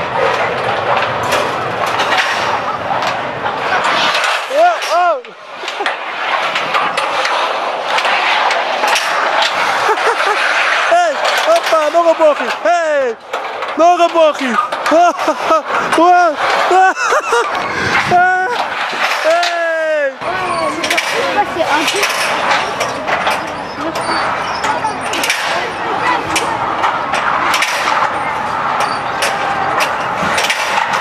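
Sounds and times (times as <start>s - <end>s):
trolley wheels rattling on steel rail: 0.0s - 31.0s
man whooping and laughing: 9.7s - 11.2s, 14.8s - 18.7s.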